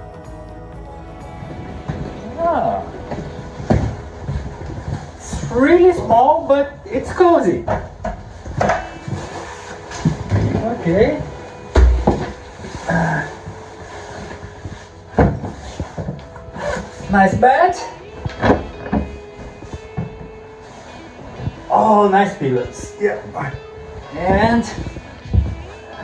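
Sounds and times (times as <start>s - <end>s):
handling noise: 0.0s - 17.1s, 18.0s - 21.8s
padded jacket rustling: 1.0s - 17.2s, 17.8s - 26.0s.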